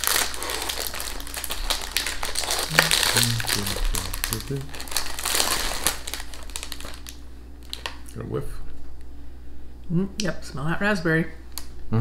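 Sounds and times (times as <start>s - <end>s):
plastic wrapper crinkling: 0.0s - 8.1s.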